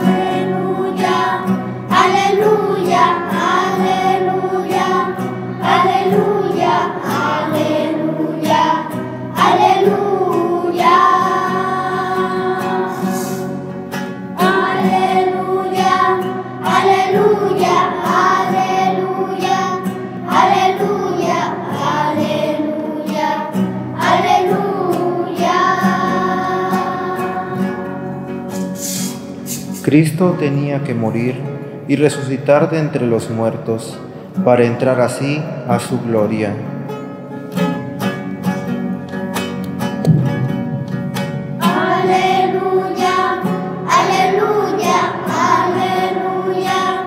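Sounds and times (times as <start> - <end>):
choir singing a hymn: 0.0 - 29.3, 40.2 - 47.0
guitar: 0.0 - 47.0.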